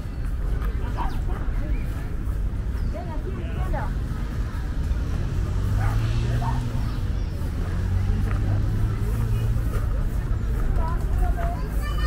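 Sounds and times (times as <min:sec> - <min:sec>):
faint distant voices: 0:00.0 - 0:12.0
road traffic rumble: 0:00.0 - 0:12.0
vehicle engine hum: 0:00.0 - 0:12.0.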